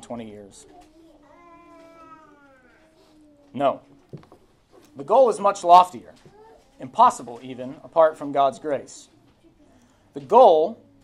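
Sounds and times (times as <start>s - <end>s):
young child whining: 0.8s - 3.5s, 6.3s - 6.8s.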